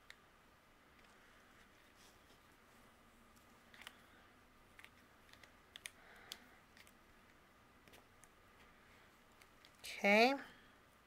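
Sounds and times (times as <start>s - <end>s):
soft rustle: 0.9s - 5.6s.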